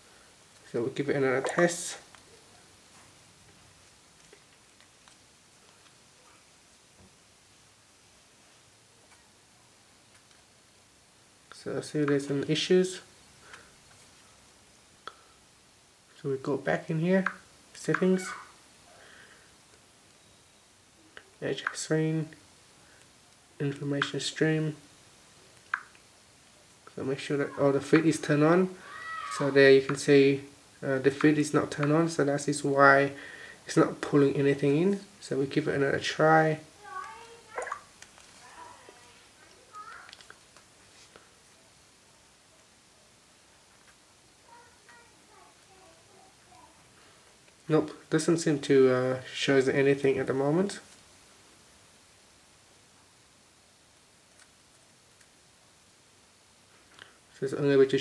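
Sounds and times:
faint clicks: 25.6s - 26.0s, 39.4s - 41.3s.

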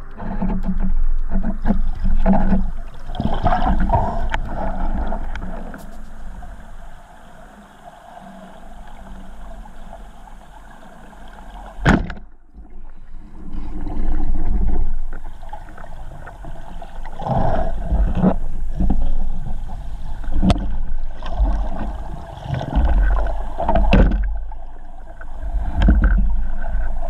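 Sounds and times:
muffled underwater rumble: 0.0s - 27.0s.

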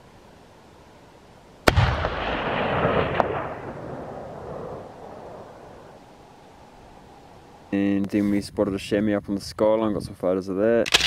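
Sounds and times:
rifle shot echoing: 1.6s - 6.0s.

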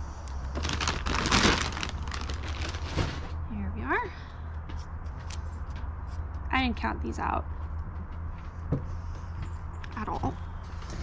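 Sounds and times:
seed packet crinkling: 0.4s - 3.3s.

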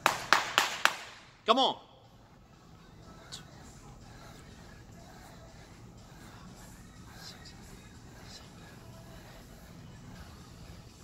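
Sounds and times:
soft short exercise sounds: 2.0s - 11.0s.

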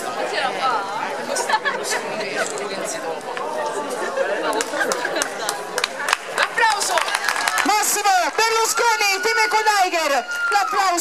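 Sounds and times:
audience clapping: 4.4s - 9.1s.

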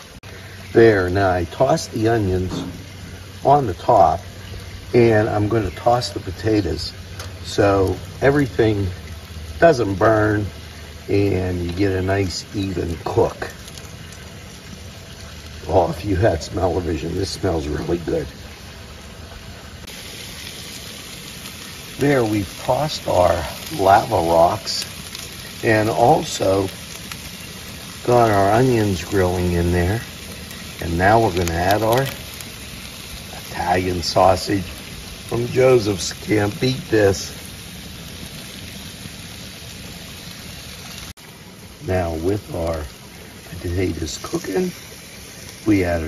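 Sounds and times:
vegetables sizzling on grill: 0.0s - 46.0s.

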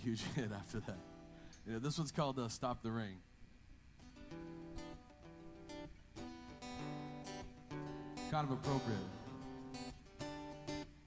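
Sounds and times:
acoustic guitar strumming: 4.0s - 11.0s.

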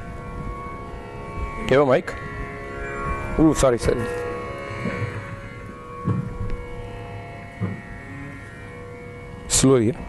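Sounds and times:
steady pitch drone: 0.0s - 10.0s
short dull thumps: 6.0s - 6.4s, 7.6s - 7.9s.

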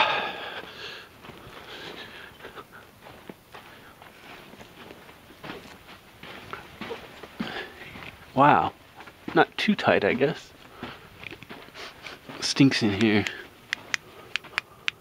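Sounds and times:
person breathing softly: 0.0s - 3.0s
footsteps on loose rock: 3.0s - 14.6s.

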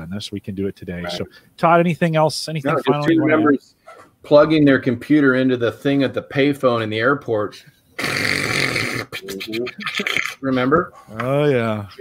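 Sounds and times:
men laughing: 2.7s - 3.5s, 9.2s - 10.7s.

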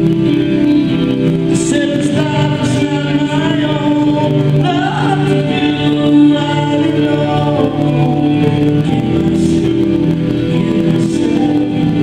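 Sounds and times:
acoustic guitar: 0.0s - 12.0s
keyboard: 0.0s - 12.0s.

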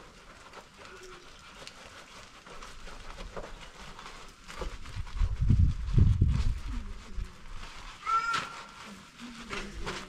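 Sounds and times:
short high animal call: 8.0s - 8.8s.

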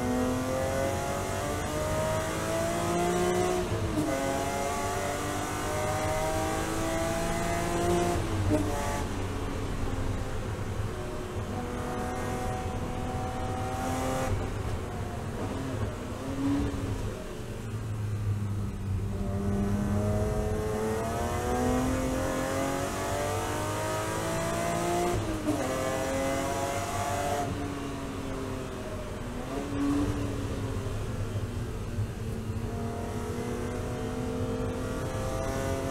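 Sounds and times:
race car engine: 0.0s - 35.9s.

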